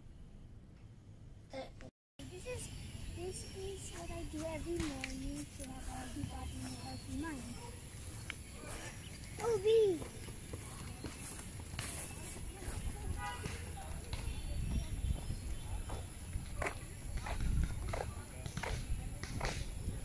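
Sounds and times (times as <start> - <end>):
running footsteps on track: 3.9 - 20.0
wind rumble on microphone: 10.2 - 20.0.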